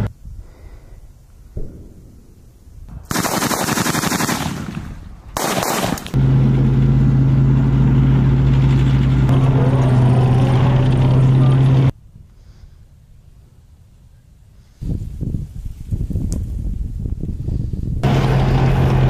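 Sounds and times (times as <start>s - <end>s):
automatic gunfire bursts: 3.1s - 4.8s, 5.4s - 6.1s
vehicle track noise: 6.0s - 12.0s, 18.0s - 19.0s
diesel engine drone: 6.1s - 12.0s, 18.0s - 19.0s.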